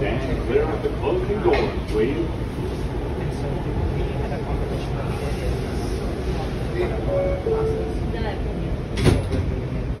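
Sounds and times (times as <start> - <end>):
subway doors closing with thud: 0.0 - 10.0
train low rumble: 0.0 - 10.0.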